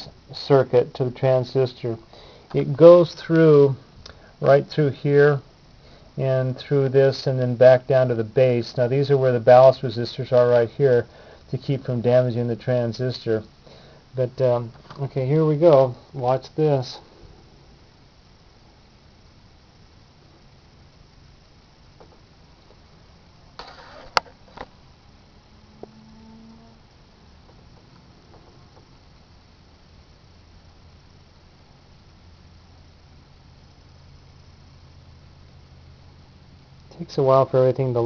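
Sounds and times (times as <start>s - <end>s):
faint low hum: 0.0s - 38.0s.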